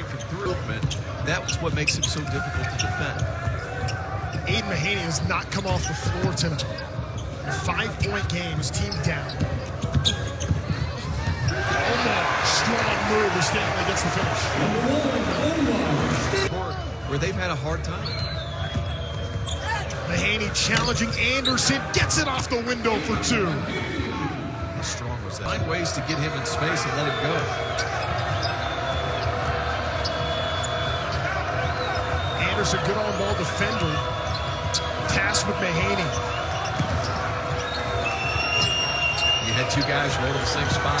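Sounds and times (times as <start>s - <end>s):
arena crowd noise: 0.0s - 41.0s.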